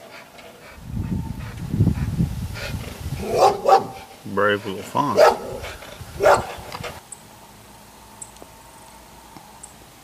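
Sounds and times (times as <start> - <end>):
fox barking: 3.2 - 7.0.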